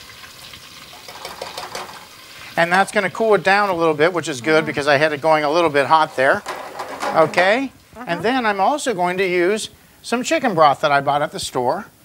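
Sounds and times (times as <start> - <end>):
oil sizzling and crackling: 0.0 - 12.0.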